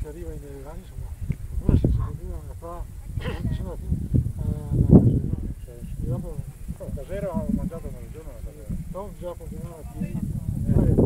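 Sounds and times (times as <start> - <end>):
people talking: 0.0 - 11.0
wind buffeting microphone: 0.0 - 11.0.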